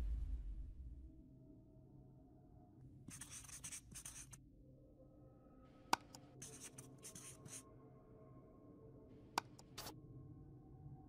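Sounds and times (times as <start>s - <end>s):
marker pen scratching: 3.1s - 4.4s, 6.0s - 7.6s, 9.4s - 9.9s.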